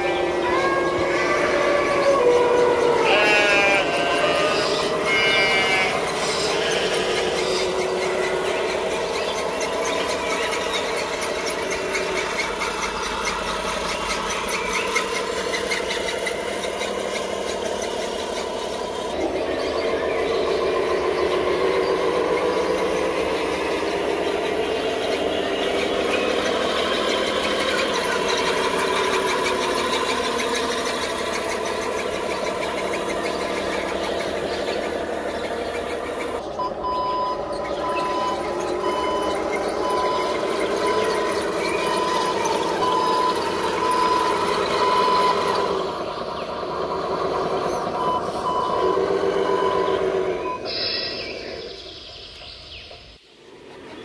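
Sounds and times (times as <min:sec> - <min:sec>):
gears ticking: 0:00.0 - 0:50.7
toy truck electric motor whining: 0:00.0 - 0:51.7.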